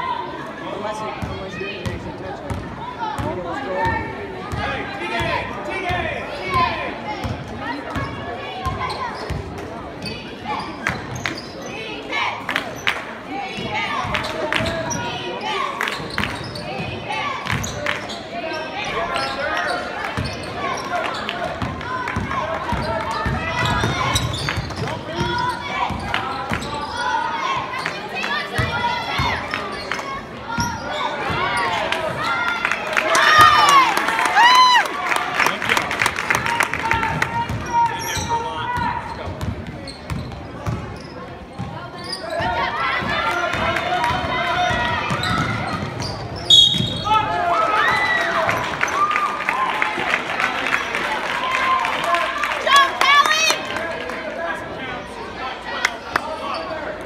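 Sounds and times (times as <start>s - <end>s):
people shouting and chattering: 0.0s - 57.0s.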